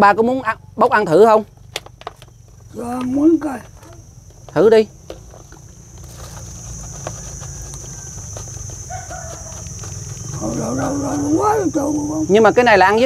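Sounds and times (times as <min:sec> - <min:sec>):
crickets buzzing: 0:00.0 - 0:13.0.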